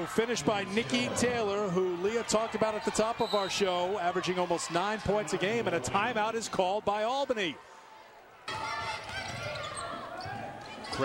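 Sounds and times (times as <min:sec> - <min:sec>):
basketball bouncing on court: 0:08.5 - 0:11.0.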